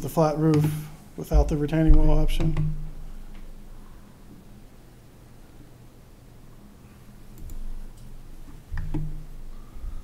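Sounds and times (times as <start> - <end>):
low room hum: 0.0 - 10.0
computer mouse clicking: 7.4 - 8.1.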